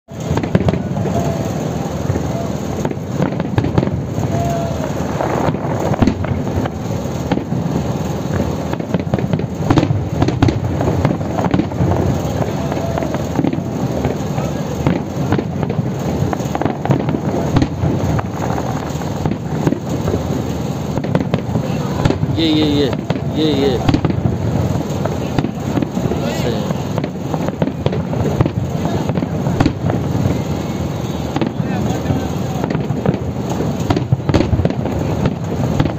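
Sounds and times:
fireworks bangs and crackling: 0.1s - 35.9s.

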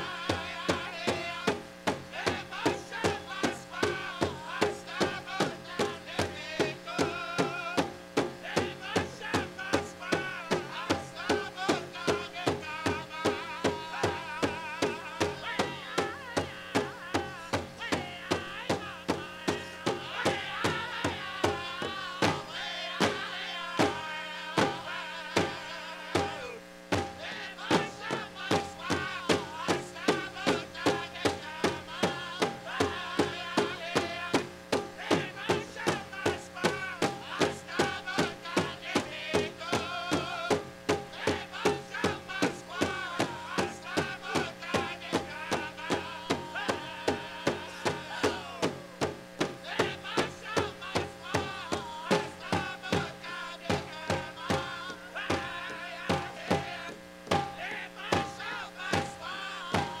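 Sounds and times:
big drum beat: 0.0s - 60.0s
group singing: 0.0s - 60.0s.

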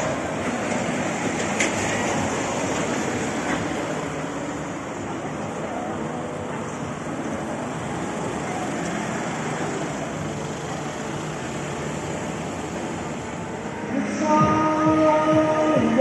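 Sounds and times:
traffic noise: 0.0s - 16.0s.

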